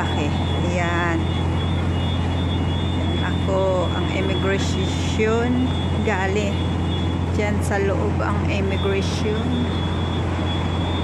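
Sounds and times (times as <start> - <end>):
city street rumble: 0.0 - 11.0.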